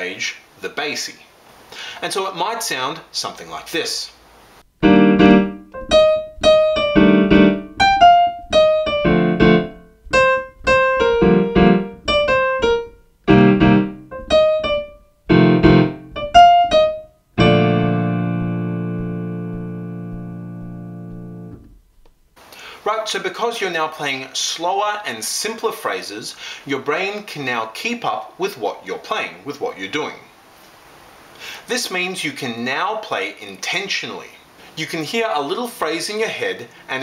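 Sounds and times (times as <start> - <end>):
jazz piano improvisation: 4.8 - 21.9.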